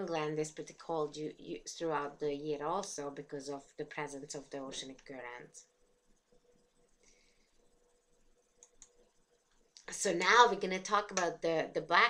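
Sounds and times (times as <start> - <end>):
woman speaking: 0.0 - 5.7, 9.8 - 12.0.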